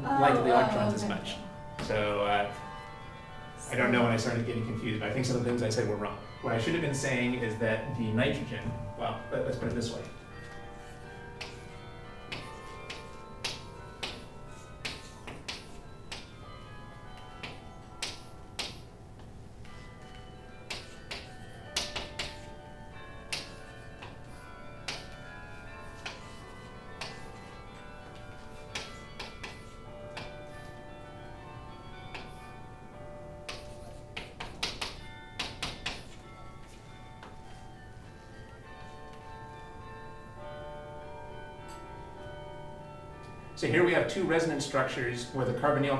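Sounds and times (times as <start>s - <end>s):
chalk tapping on a chalkboard: 12.3s - 16.3s, 17.4s - 18.9s, 20.7s - 22.5s, 23.3s - 25.1s, 27.0s - 27.3s, 28.7s - 30.3s, 33.5s - 36.2s.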